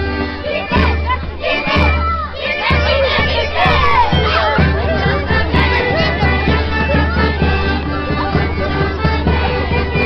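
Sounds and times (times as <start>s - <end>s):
children shouting and cheering: 0.1s - 10.0s.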